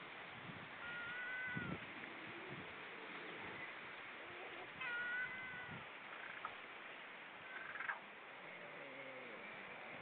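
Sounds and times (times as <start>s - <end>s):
wind hiss: 0.0s - 10.0s
bird mewing call: 7.5s - 8.0s.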